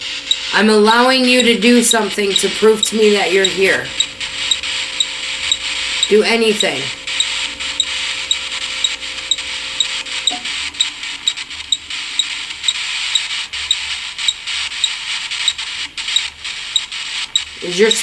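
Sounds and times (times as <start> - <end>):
low hum: 0.0 - 18.0
steady hiss: 0.0 - 18.0
faint regular ticking: 0.2 - 18.0
small pops and clicks: 2.3 - 17.5.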